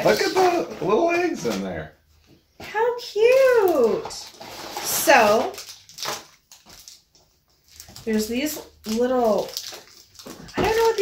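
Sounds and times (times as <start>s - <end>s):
foil wrapper crinkling: 0.0s - 1.7s, 3.1s - 11.0s.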